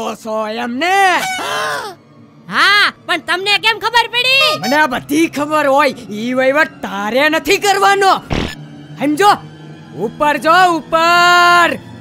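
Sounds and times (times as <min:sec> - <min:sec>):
person yelling: 0:01.0 - 0:03.0, 0:03.9 - 0:04.8.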